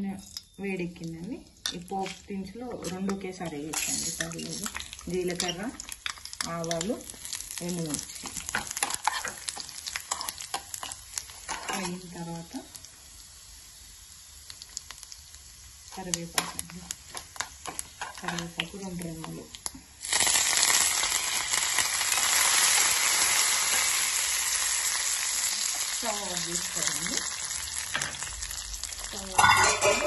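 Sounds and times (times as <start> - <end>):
oil sizzling in a pan: 0.0 - 30.0.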